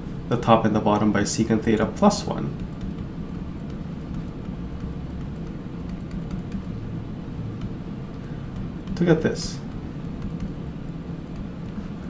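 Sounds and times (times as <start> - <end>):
steady low hum: 0.0 - 12.0
stylus ticking on tablet screen: 2.6 - 6.7.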